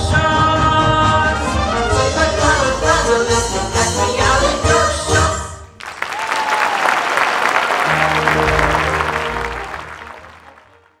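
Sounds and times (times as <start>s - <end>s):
cast singing with accompaniment: 0.0s - 5.7s
audience applause: 5.8s - 11.0s
sustained instrumental tones: 7.9s - 10.9s.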